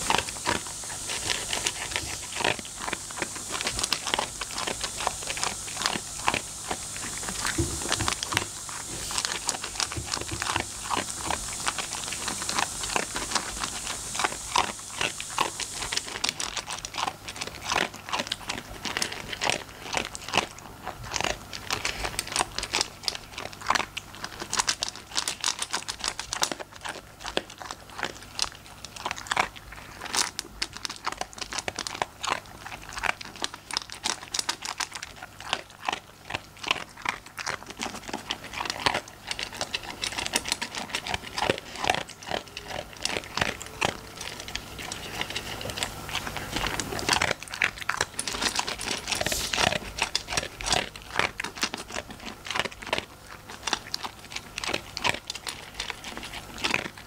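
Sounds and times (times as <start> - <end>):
dog crunching food from bowl: 0.0 - 57.0.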